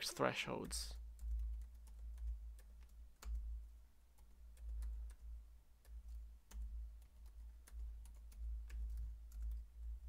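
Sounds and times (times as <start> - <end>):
keyboard keystrokes: 0.6 - 3.6, 4.2 - 9.7.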